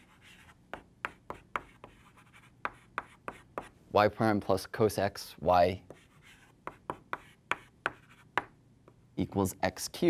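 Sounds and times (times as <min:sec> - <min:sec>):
chalk writing on blackboard: 0:00.0 - 0:03.8, 0:05.8 - 0:08.6.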